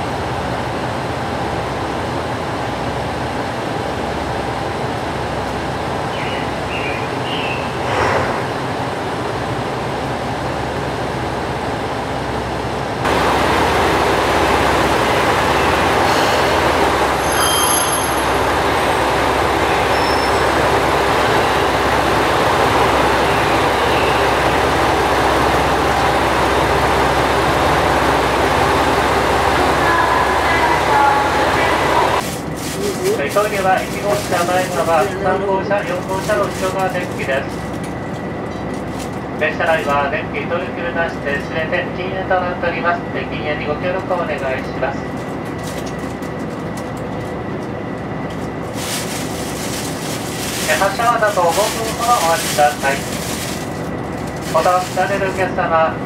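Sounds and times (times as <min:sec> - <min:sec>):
diesel train engines idling: 0:00.0 - 0:56.0.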